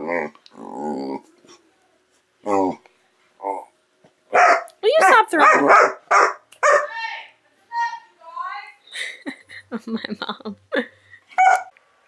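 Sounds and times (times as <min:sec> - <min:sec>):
dogs barking: 0:04.3 - 0:07.0, 0:11.4 - 0:11.7.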